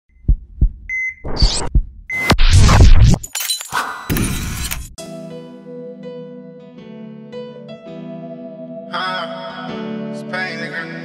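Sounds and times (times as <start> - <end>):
low thumps: 0.2 - 2.8.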